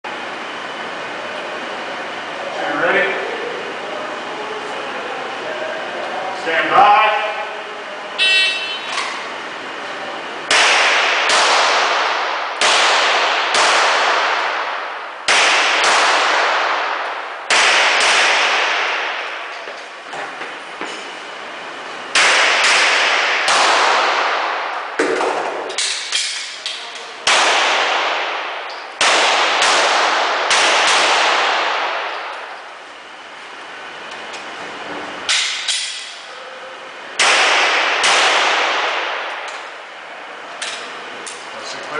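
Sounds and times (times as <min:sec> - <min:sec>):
shot timer beep: 0:08.2 - 0:08.9
pistol shots ringing: 0:10.5 - 0:19.6, 0:22.1 - 0:26.6, 0:27.2 - 0:32.6, 0:37.2 - 0:39.7.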